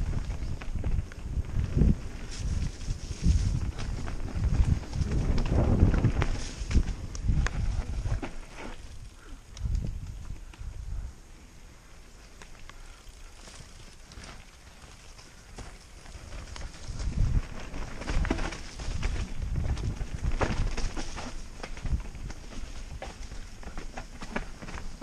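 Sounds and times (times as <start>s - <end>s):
wind buffeting microphone: 0.0s - 11.3s, 15.4s - 23.6s
bike tyres on dirt trail: 0.0s - 25.0s
bike rattling and knocking: 0.1s - 8.8s, 15.6s - 25.0s.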